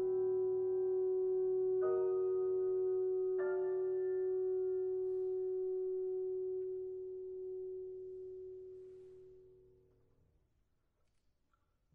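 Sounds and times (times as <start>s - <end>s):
piano chord: 0.0s - 9.9s.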